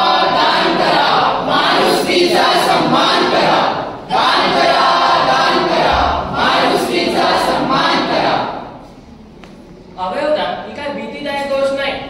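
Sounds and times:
young voices singing in chorus: 0.0 - 8.8.

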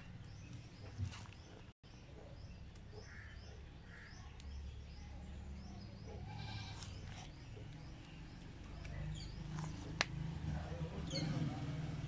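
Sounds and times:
goat bleating: 6.2 - 7.0.

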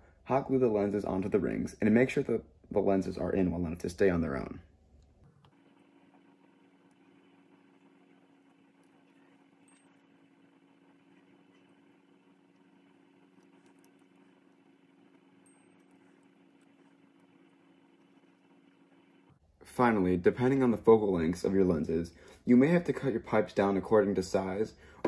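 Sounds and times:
low hum: 0.0 - 20.9.

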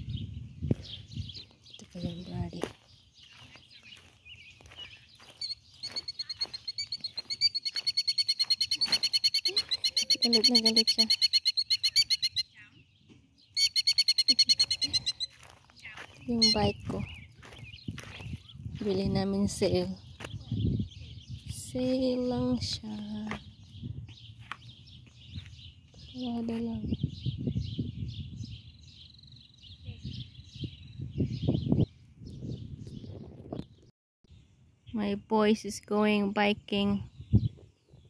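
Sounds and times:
birds chirping: 0.0 - 38.0
bird alarm trill: 3.7 - 18.6.

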